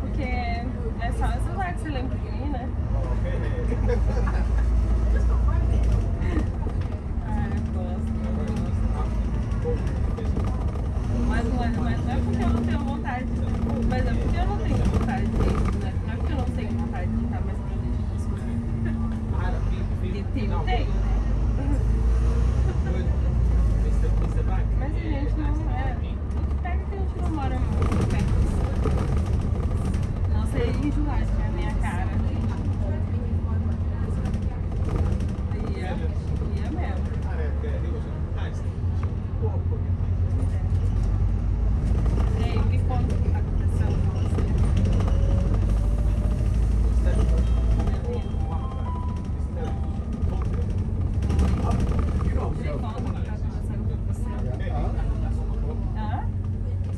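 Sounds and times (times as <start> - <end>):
bus engine and road rumble: 0.0 - 56.9
passenger chatter: 0.0 - 56.9.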